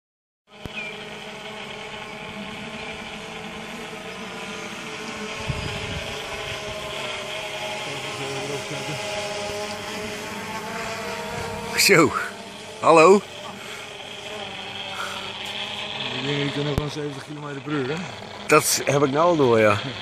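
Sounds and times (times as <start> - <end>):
drone rotors buzzing: 0.5 - 20.0
wind rumble: 5.2 - 7.0.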